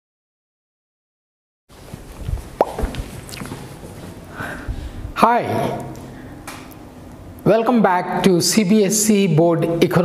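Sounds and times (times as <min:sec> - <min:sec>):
indoor room sound: 0:01.7 - 0:10.0.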